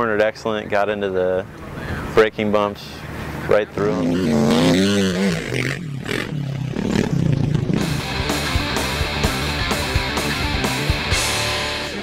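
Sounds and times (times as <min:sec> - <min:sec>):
dirt bike engine: 0:03.4 - 0:12.0
hard rock music: 0:07.7 - 0:12.0.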